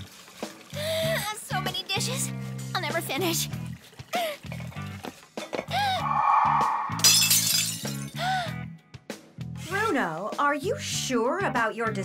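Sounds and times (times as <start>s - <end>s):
background music: 0.4s - 12.0s
crockery shattering: 7.0s - 8.2s.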